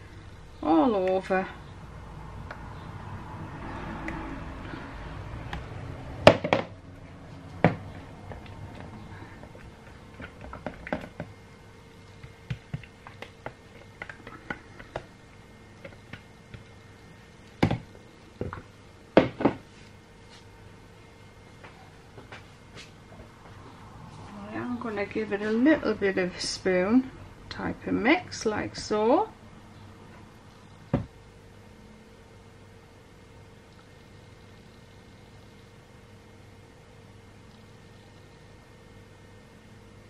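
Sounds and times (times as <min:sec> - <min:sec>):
faint steady hum: 0:00.0 - 0:40.0
plastic jugs knocking on worktop: 0:06.2 - 0:06.7, 0:19.2 - 0:19.6.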